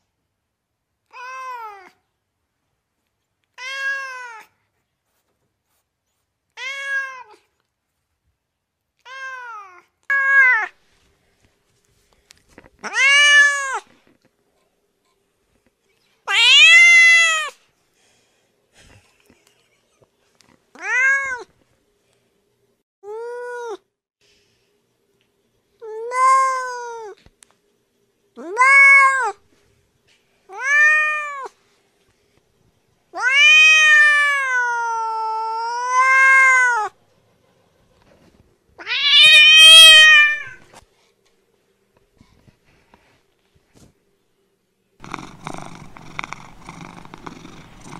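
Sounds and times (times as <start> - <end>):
cat meowing: 12.8 - 13.9, 16.3 - 17.6, 33.2 - 37.0, 38.8 - 40.6.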